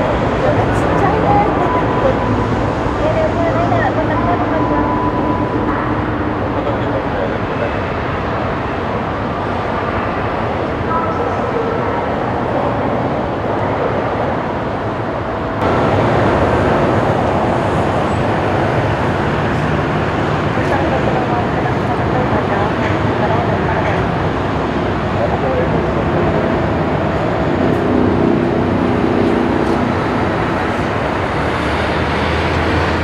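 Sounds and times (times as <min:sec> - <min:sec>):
jet engines roaring: 0:00.0 - 0:33.0.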